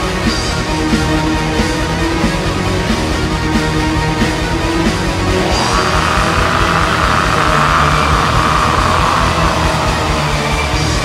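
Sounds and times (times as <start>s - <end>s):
distorted guitar: 5.2s - 11.0s
fast drumming: 5.4s - 10.3s.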